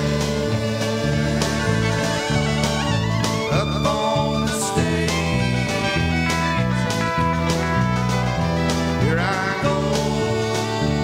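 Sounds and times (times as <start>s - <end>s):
bass guitar: 0.0s - 11.0s
electric guitar: 0.0s - 11.0s
fiddle: 0.0s - 11.0s
steady drum beat: 0.0s - 11.0s.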